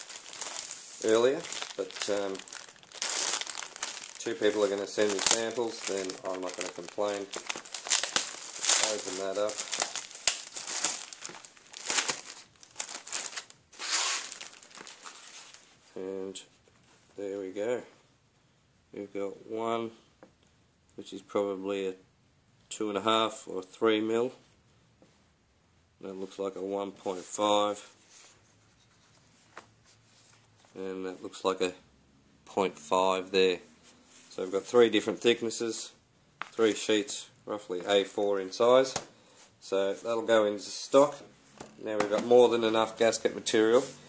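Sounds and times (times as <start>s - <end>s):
plastic bag crinkling: 0.0s - 15.7s.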